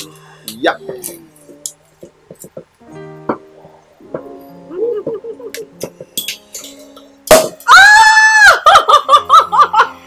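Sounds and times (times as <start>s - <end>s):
woman laughing: 4.7s - 5.8s, 8.3s - 10.0s
champagne cork popping: 5.6s - 7.8s
woman squealing: 7.7s - 9.0s.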